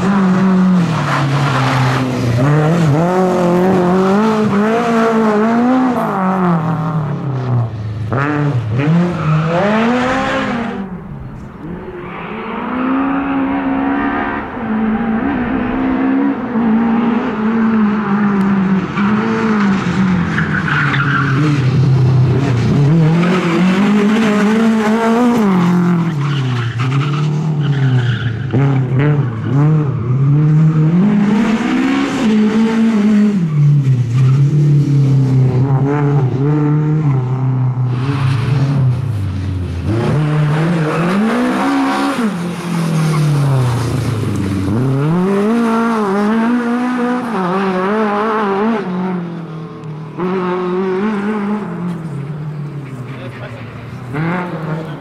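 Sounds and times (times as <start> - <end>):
rally car engine revving hard: 0.0 - 10.9, 11.6 - 49.5, 50.1 - 52.4, 54.0 - 55.0.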